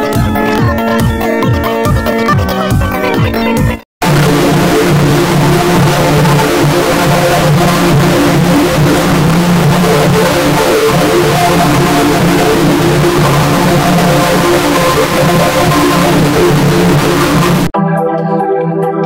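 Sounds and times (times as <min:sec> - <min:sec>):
distorted buzzing noise: 0:04.0 - 0:17.8
held low tones: 0:04.0 - 0:17.8.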